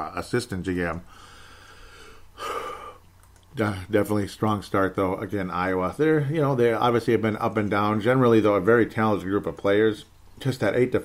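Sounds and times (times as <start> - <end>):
man sighing: 1.1 - 3.0.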